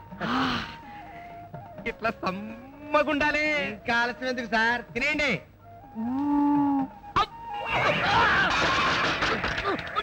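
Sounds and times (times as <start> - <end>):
moo-like vocal call: 6.0 - 6.9.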